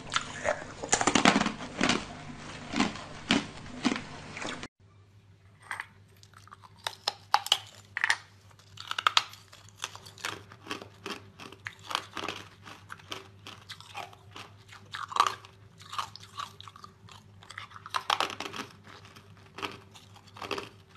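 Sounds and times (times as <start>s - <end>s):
ice being chewed: 0.0s - 4.7s, 5.6s - 20.9s.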